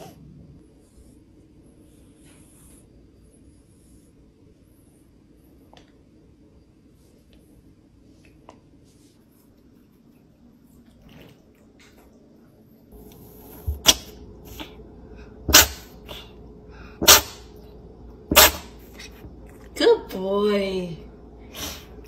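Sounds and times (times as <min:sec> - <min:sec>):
cat sneezing: 0:13.7 - 0:14.8, 0:15.5 - 0:16.4, 0:17.0 - 0:17.5, 0:18.3 - 0:19.2, 0:21.5 - 0:22.0.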